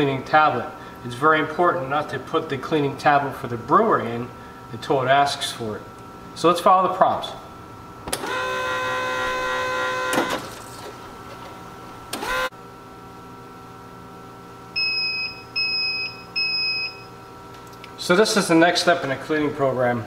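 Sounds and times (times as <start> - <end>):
coffee machine pump whine: 0.0 - 20.0.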